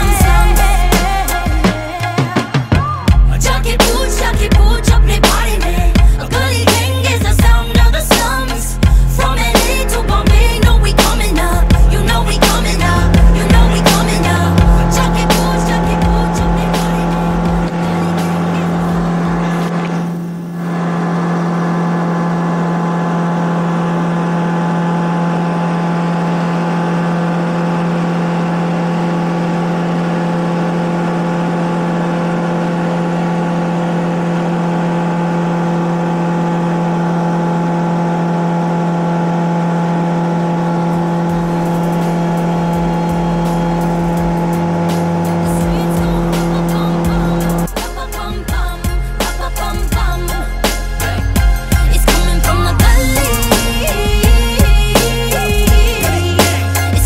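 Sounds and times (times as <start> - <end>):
aircraft engine and propeller drone: 0.2 - 48.4.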